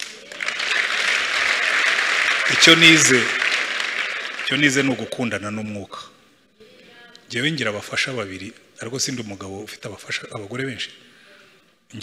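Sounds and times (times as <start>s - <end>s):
congregation applauding: 0.0s - 5.7s.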